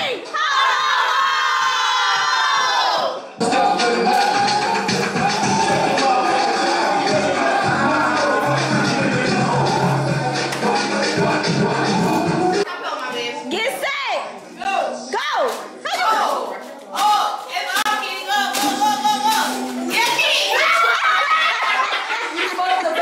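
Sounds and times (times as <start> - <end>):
loud music with bass line: 3.4 - 12.7
women cheering: 4.1 - 9.8, 20.2 - 21.6.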